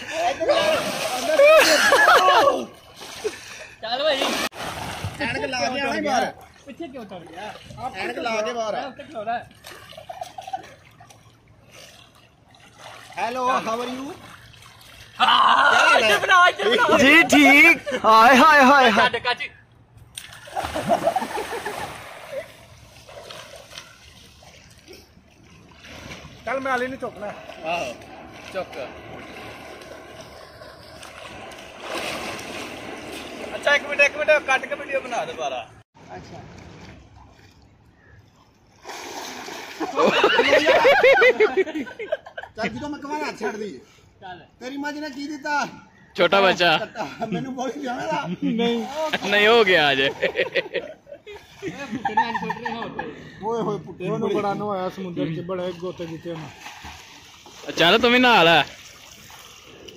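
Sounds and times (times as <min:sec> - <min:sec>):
man laughing: 0:00.0 - 0:03.5, 0:39.8 - 0:42.8, 0:46.8 - 0:49.1, 0:50.1 - 0:54.4
faint pool water splashing: 0:00.0 - 0:59.9.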